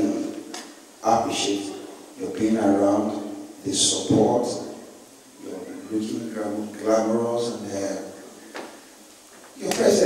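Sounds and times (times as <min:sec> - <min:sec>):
man speaking through microphone: 0:00.0 - 0:00.4, 0:01.0 - 0:08.2, 0:09.6 - 0:10.0.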